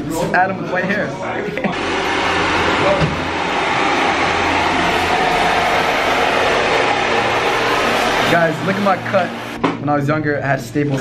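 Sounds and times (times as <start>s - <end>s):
hair dryer blowing: 1.7s - 9.6s.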